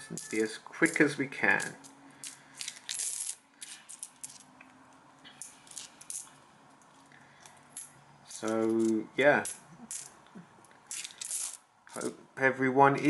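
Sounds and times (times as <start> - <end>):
coins clinking: 0.0 - 4.6, 5.3 - 10.2, 10.9 - 12.1.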